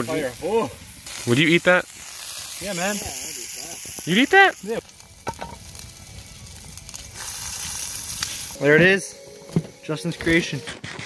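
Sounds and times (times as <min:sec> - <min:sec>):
burger patty sizzling: 0:00.0 - 0:10.7.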